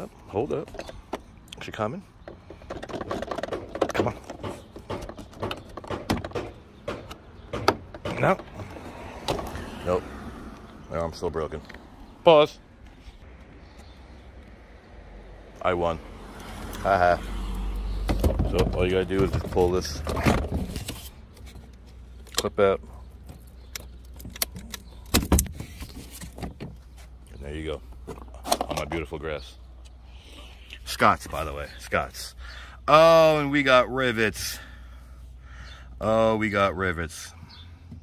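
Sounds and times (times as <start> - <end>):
plastic panel creaking and clicking: 2.2 - 9.5, 23.2 - 26.8.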